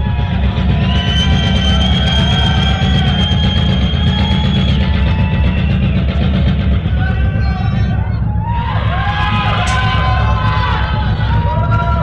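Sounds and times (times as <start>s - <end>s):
rumble of drums and bass: 0.0s - 12.0s.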